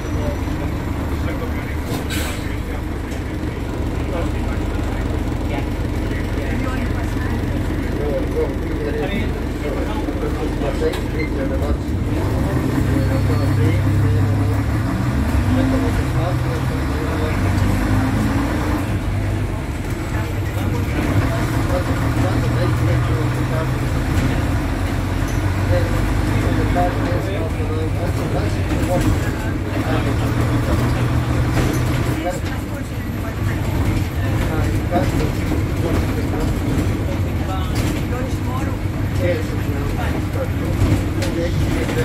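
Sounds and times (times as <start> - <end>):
bus engine humming: 0.0 - 42.0.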